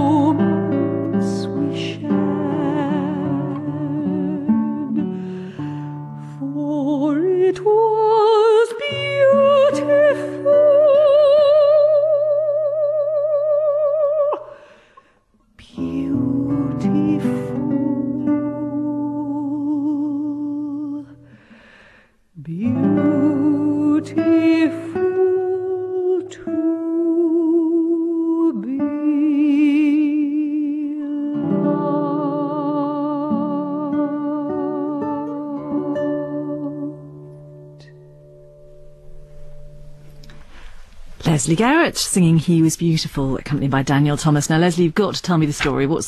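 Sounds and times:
plucked acoustic guitar: 0.0s - 12.8s, 31.2s - 41.1s
soprano voice singing with vibrato: 0.0s - 14.9s, 15.6s - 21.3s, 22.4s - 37.6s.

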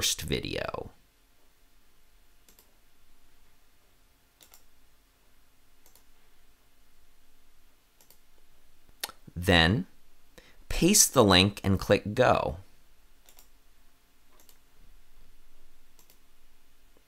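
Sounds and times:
faint computer mouse clicks: 2.5s - 2.7s, 4.4s - 4.7s, 5.8s - 6.1s, 8.0s - 8.2s, 13.2s - 13.5s, 14.3s - 14.6s, 16.0s - 16.2s.

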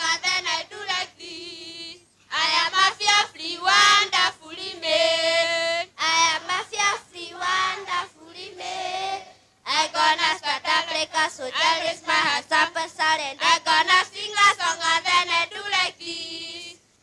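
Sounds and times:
children singing: 0.0s - 16.8s.

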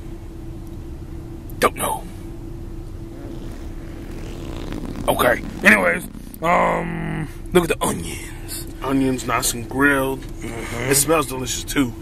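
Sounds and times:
constant hum: 0.0s - 12.0s
low machine rumble: 3.1s - 8.8s.

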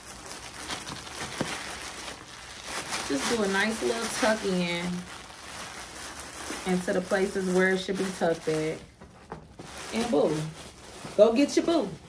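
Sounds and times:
cellophane wrap crinkling: 0.0s - 12.0s.

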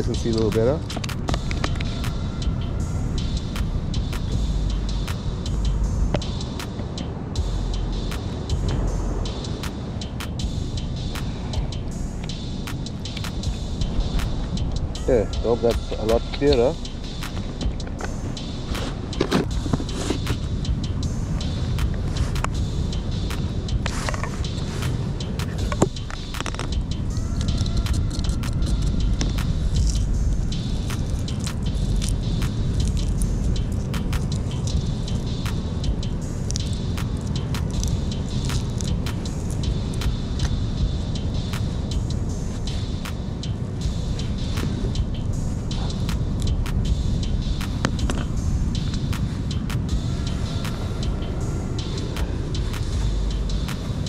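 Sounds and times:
wind: 0.0s - 54.0s.

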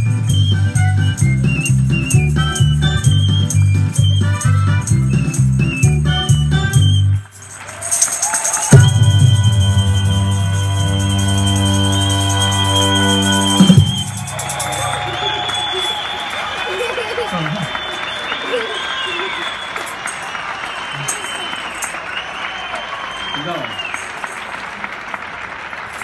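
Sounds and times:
people clapping and cheering: 0.0s - 26.0s
voices calling out: 10.1s - 22.0s.

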